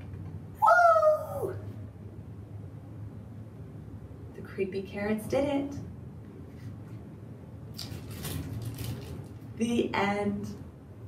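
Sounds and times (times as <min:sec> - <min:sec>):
woman cheering woo: 0:00.6 - 0:01.6.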